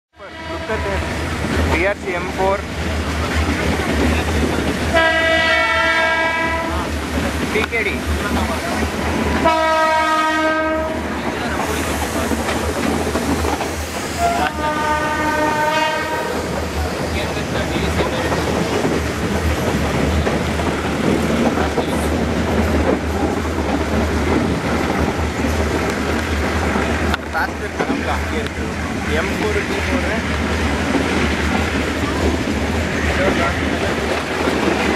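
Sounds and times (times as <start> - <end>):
train horn blasts: 0.2 - 1.2, 4.9 - 6.9, 9.4 - 11.1, 14.2 - 16.5
train rumble and wheel clatter: 0.2 - 34.9.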